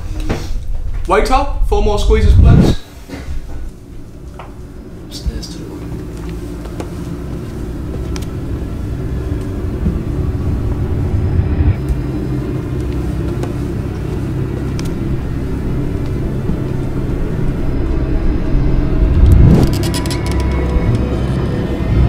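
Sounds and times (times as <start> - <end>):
low suspense drone: 3.3 - 22.0.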